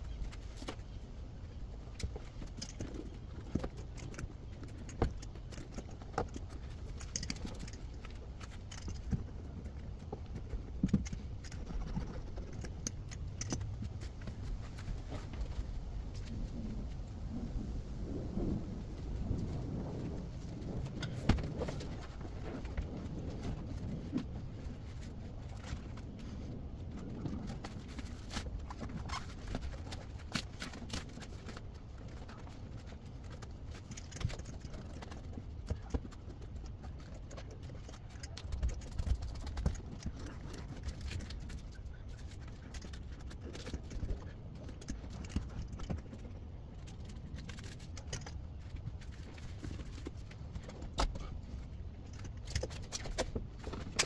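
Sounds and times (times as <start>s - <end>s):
low steady rumble: 0.0s - 54.0s.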